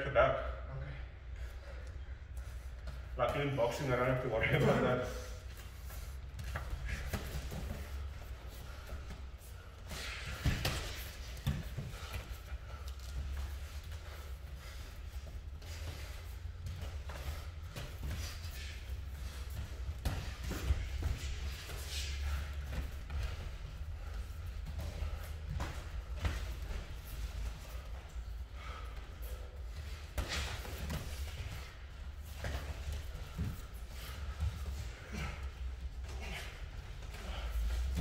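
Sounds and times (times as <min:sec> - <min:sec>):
footwork on mats: 0:01.4 - 0:38.0.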